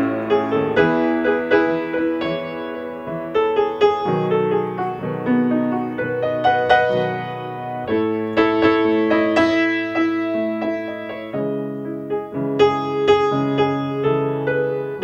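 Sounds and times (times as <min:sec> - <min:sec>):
solo grand piano: 0:00.0 - 0:15.0.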